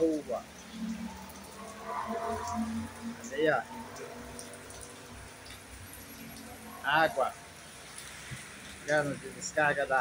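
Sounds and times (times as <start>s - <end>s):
rain hiss: 0.0s - 10.0s
motorcycle passing: 0.5s - 8.4s.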